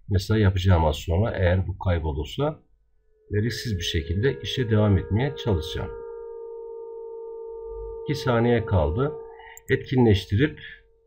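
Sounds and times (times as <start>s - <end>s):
steady electronic hum: 2.9s - 11.0s.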